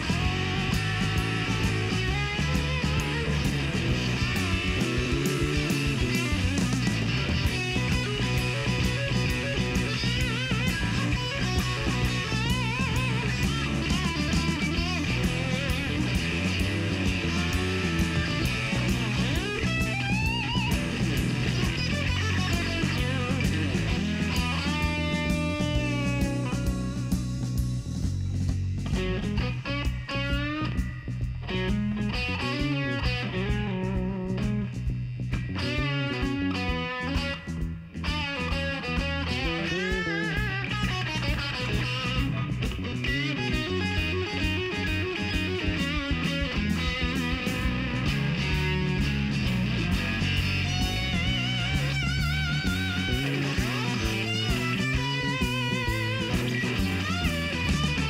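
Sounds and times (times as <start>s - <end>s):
bass guitar: 0.0s - 58.0s
drum kit with cymbals: 0.0s - 58.0s
lead electric guitar: 0.0s - 58.0s.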